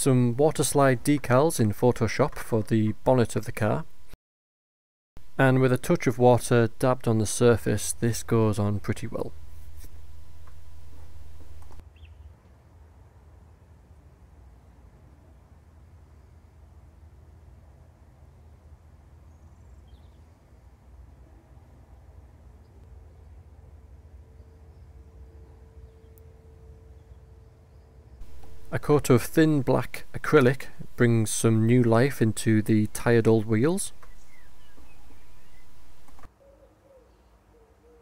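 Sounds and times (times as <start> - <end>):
steady low hum: 0.0 - 4.2, 5.2 - 11.8, 28.2 - 36.3
faint steady tone: 5.2 - 11.8, 22.8 - 36.3.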